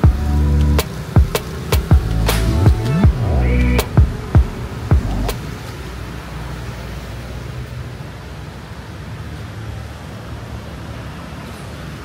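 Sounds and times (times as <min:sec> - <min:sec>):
sharp music beat: 0:00.0 - 0:05.4
low rumble: 0:01.9 - 0:05.4.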